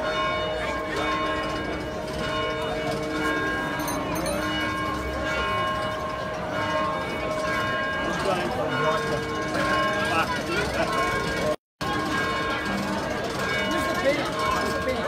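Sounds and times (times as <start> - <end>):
bells ringing: 0.0 - 15.0
murmur of crowd voices: 0.0 - 15.0.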